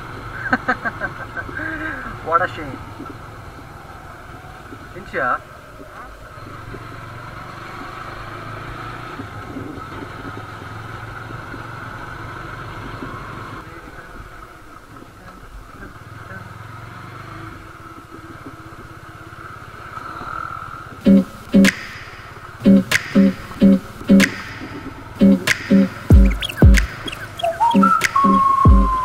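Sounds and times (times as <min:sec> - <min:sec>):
road and wind noise: 0:00.0 - 0:22.7, 0:23.4 - 0:29.0.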